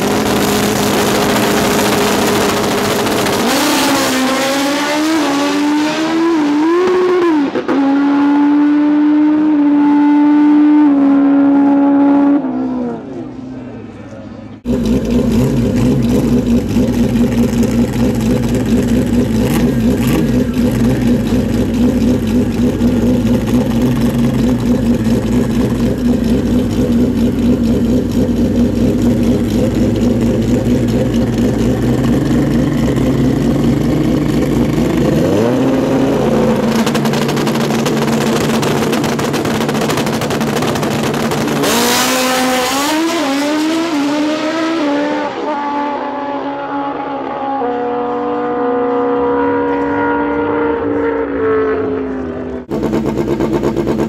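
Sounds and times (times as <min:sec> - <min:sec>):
motorcycle engines revving and launching: 0:00.0 - 0:54.0.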